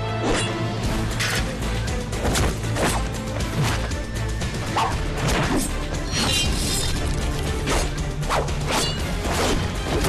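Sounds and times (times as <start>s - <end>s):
dramatic music score: 0.0s - 10.0s.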